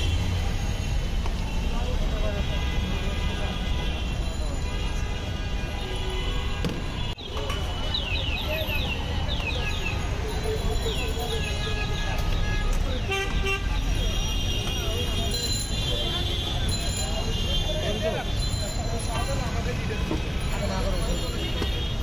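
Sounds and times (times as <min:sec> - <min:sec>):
low traffic rumble: 0:00.0 - 0:22.0.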